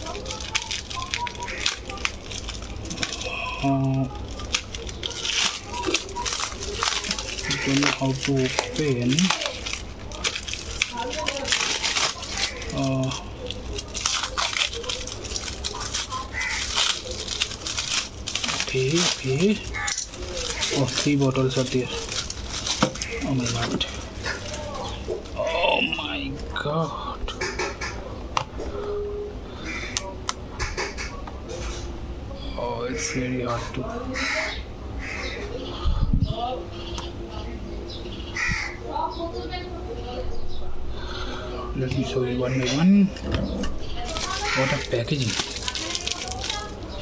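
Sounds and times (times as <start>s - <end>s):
plastic bottles knocking together: 0.0s - 25.3s, 44.0s - 46.9s
plastic bag and paper crinkling: 0.0s - 25.7s, 43.6s - 47.0s
low steady hum: 0.0s - 47.0s.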